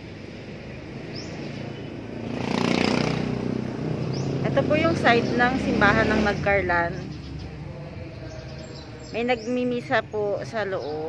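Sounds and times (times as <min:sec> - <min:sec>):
vehicle engine passing by: 0:00.0 - 0:09.4.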